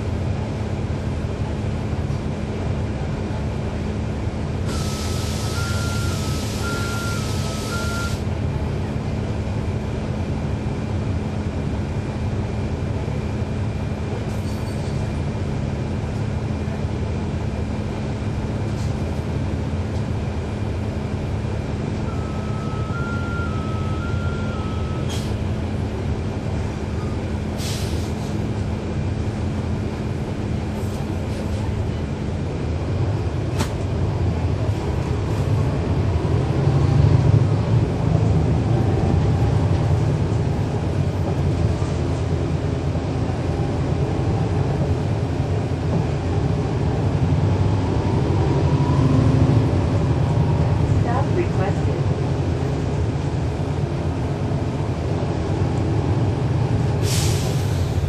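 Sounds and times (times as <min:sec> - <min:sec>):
diesel bus engine running: 0:00.0 - 0:58.0
hiss of air: 0:04.7 - 0:05.6, 0:27.6 - 0:28.3, 0:57.0 - 0:58.0.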